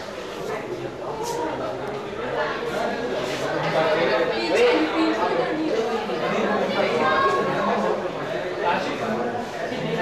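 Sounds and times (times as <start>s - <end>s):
hubbub of overlapping conversations: 0.0s - 10.0s.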